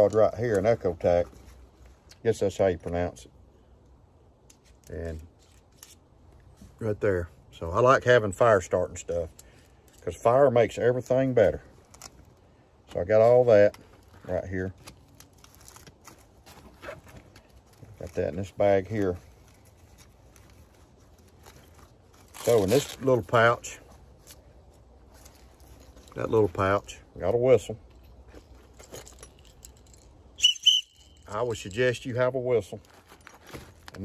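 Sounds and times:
handling clicks and rustles: 0.0 - 34.0
high whistle blasts: 30.4 - 31.3.

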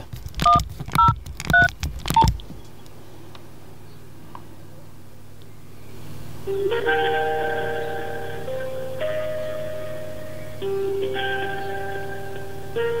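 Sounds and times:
faint steady hiss: 0.0 - 13.0
phone keypad beeps: 0.4 - 2.3.

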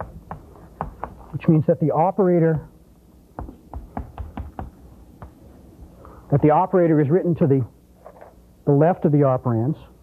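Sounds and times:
chalk tapping on blackboard: 0.0 - 1.4, 3.4 - 5.4.

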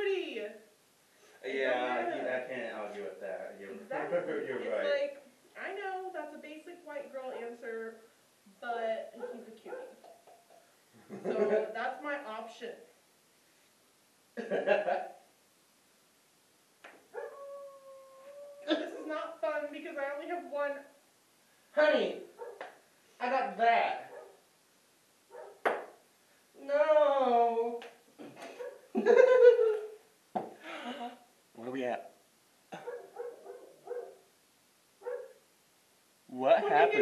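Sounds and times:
dog yipping: 9.2 - 10.2, 17.1 - 18.7, 22.4 - 22.7, 24.1 - 24.4, 25.3 - 25.6, 28.5 - 28.9, 32.8 - 34.2, 35.0 - 35.4
long howl-like call: 17.2 - 18.7.

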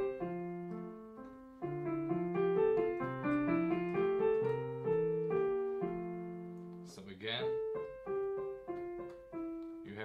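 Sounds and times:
piano melody: 0.0 - 10.0.

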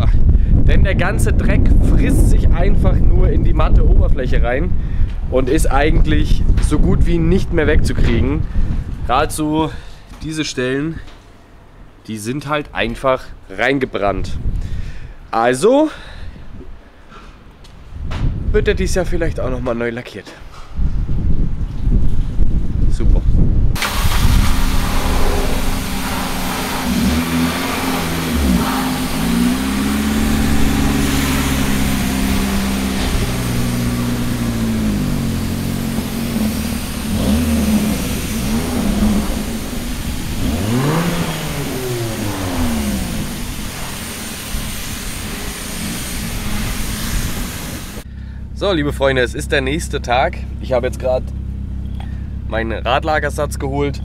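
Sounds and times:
road and wind noise: 0.0 - 54.0
car engine revving: 23.8 - 48.0.

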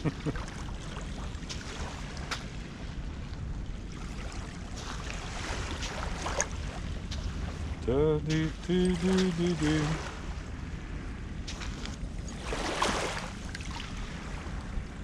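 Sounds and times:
wind rumbling on microphone: 0.0 - 15.0
footsteps crunching on wet sand: 4.7 - 10.0, 11.4 - 12.1.

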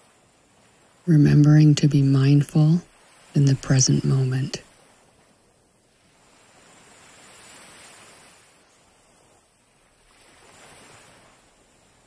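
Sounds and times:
small waves washing onto beach: 0.0 - 12.0.

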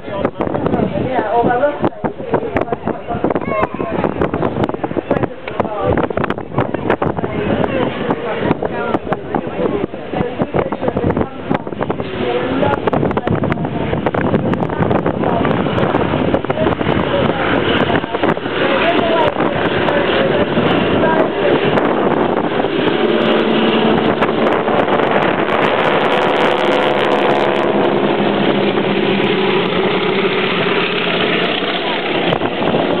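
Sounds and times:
propeller plane engines droning: 0.0 - 33.0
wind noise on microphone: 0.0 - 33.0.

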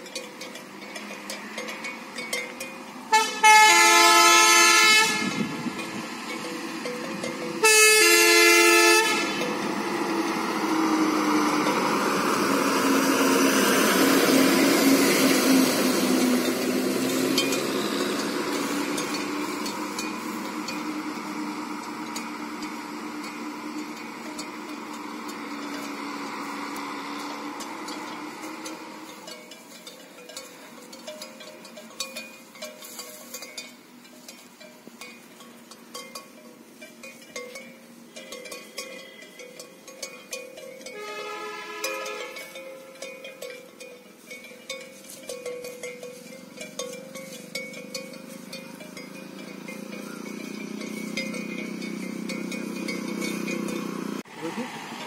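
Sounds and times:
diesel bus engine passing: 0.0 - 32.9, 37.7 - 55.0
bus horn blasts: 3.1 - 5.6, 7.6 - 9.6, 40.9 - 43.0.

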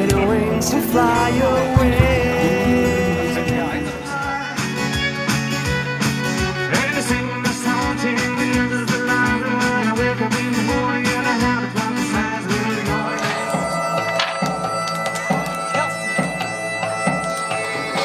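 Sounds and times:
acoustic guitar and violin folk tune: 0.0 - 14.1.

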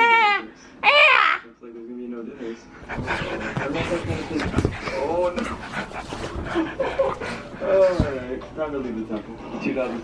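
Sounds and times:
dog panting hard: 2.7 - 8.2
bedding rustling: 2.8 - 9.0.

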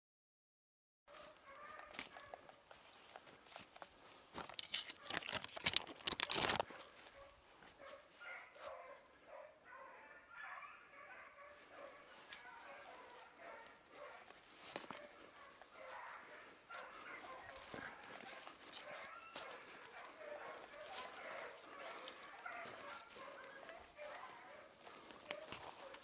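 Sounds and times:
dogs barking: 1.1 - 3.7, 4.8 - 26.0
loud crackling rustle: 4.6 - 6.7.

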